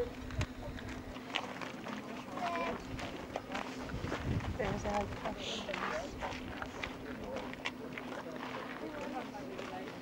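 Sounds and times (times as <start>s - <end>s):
people talking in background: 0.0s - 10.0s.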